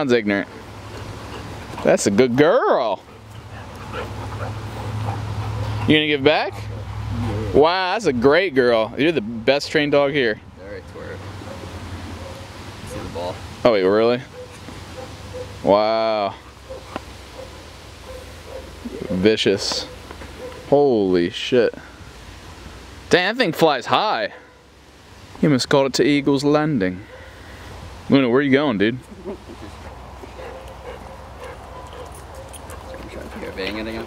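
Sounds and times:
faint dog sounds: 0:11.0 - 0:13.4, 0:14.2 - 0:20.8, 0:29.0 - 0:34.0.

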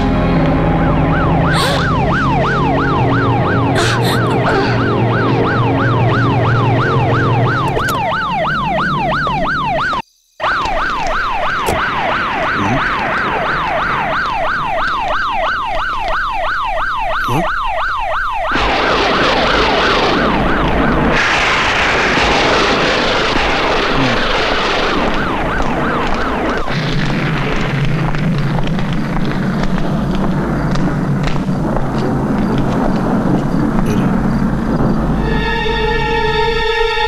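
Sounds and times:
police siren yelping: 0:00.7 - 0:21.6, 0:22.3 - 0:27.0.

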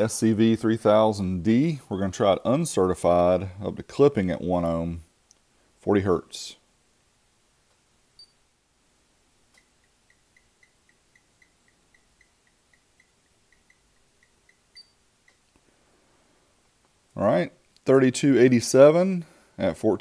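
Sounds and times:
rapid high ticks: 0:09.5 - 0:15.6.

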